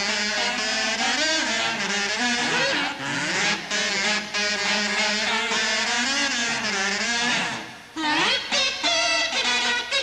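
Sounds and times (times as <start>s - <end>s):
kazoos buzzing in harmony: 0.0s - 10.0s.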